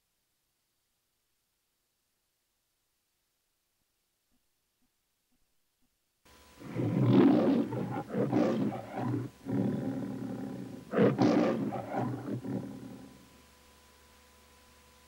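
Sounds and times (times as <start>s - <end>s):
lion roaring: 6.6s - 13.2s.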